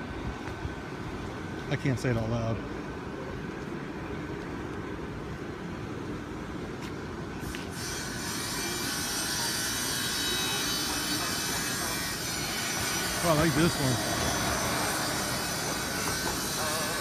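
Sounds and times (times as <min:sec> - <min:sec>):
blower fans whirring: 0:00.0 - 0:17.0
high hiss and whine: 0:07.4 - 0:17.0.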